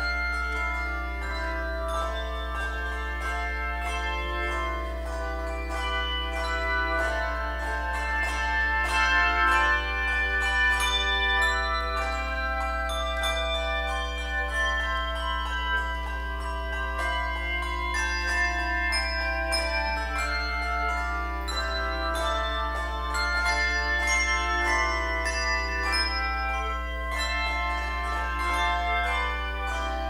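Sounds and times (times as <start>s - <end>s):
handbell choir playing: 0.0s - 30.0s.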